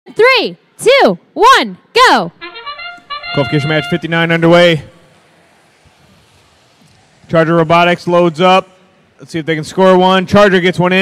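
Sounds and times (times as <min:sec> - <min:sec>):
faint arena background noise: 0:00.1 - 0:11.0.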